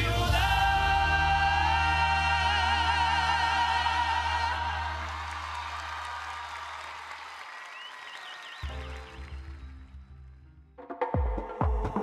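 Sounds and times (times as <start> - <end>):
music with deep bass line: 0.0 - 4.0
audience applause: 4.0 - 10.1.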